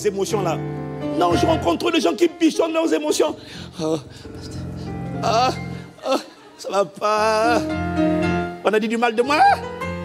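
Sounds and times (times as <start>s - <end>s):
low background music chord: 0.0s - 6.2s.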